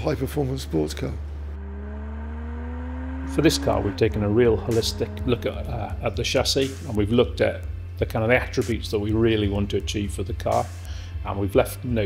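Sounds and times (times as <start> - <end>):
car engine accelerating: 1.1 - 8.0
steady low hum: 1.2 - 8.0.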